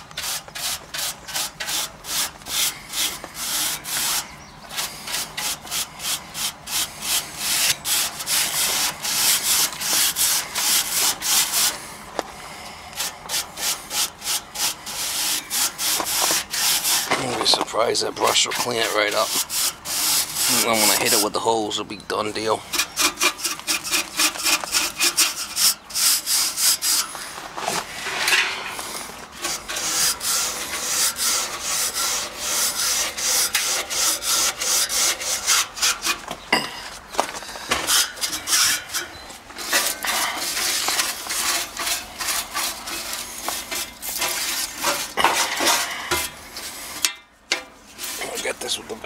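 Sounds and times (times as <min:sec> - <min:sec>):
stiff brush scrubbing metal fins: 0:00.0 - 0:11.9, 0:13.0 - 0:49.0.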